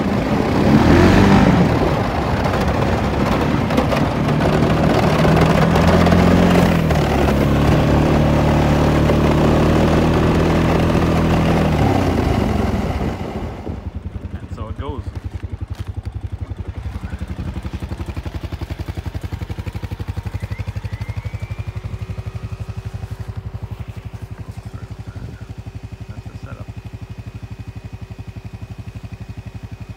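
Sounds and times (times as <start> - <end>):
engine idling: 0.0 - 29.9.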